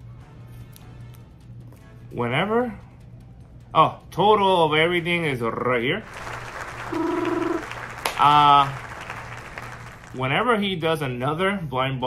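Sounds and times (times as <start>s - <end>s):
canned applause: 6.0s - 10.5s.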